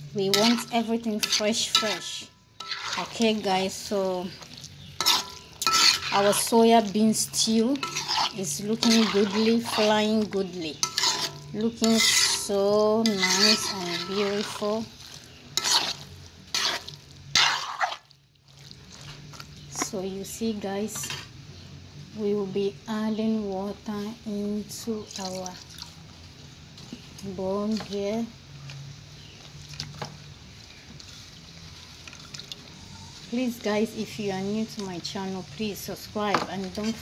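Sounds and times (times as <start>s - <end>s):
frying sizzle: 0.0s - 37.0s
spoon scraping metal pot: 0.2s - 18.0s, 20.9s - 21.3s
liquid dripping and trickling: 30.6s - 32.9s.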